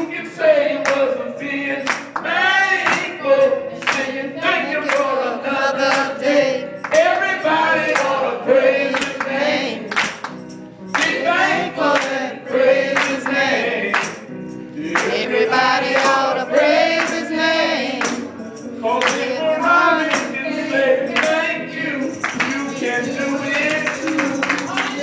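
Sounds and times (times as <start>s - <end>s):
man singing into microphone: 0.0s - 8.2s, 18.8s - 25.0s
voices singing along: 0.0s - 10.2s, 10.9s - 25.0s.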